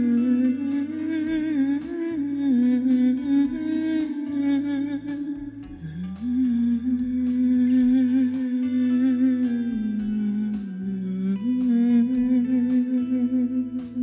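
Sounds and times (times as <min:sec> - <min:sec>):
low pulsing bass: 0:00.0 - 0:14.0
wordless hummed melody: 0:00.0 - 0:14.0.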